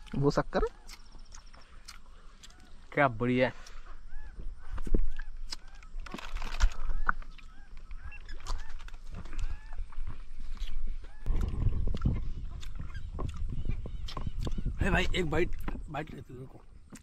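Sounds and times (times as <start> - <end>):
bird calling: 0.0 - 16.7.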